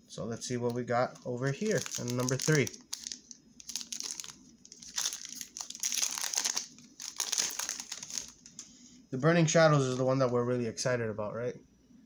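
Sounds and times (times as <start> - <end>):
foil wrapper crinkling and tearing: 1.2 - 8.6.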